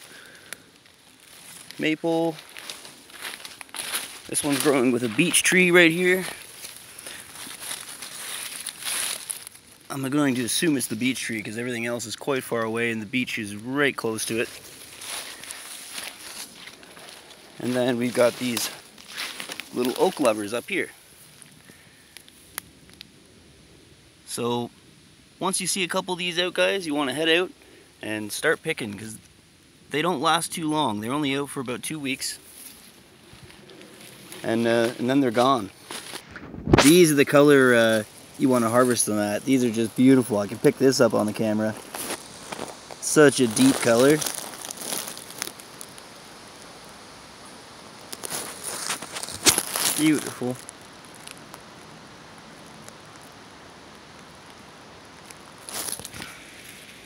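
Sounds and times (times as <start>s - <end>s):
dry leaves rustling underfoot: 0.0s - 12.6s, 13.4s - 23.0s, 32.4s - 57.0s
background hiss: 0.0s - 57.0s
twig snapping: 18.6s - 20.2s, 44.2s - 46.1s, 48.1s - 50.0s, 50.6s - 51.6s, 55.2s - 56.4s.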